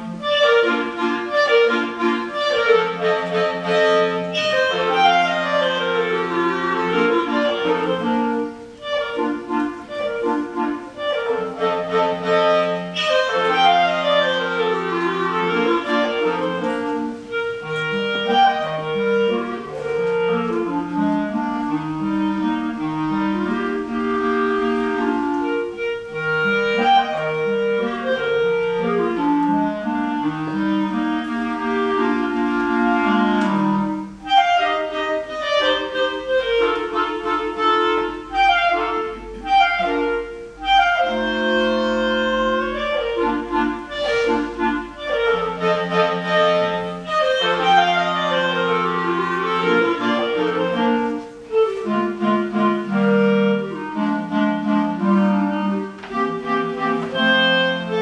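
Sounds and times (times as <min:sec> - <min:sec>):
clarinets playing in harmony: 0:00.0 - 0:58.0.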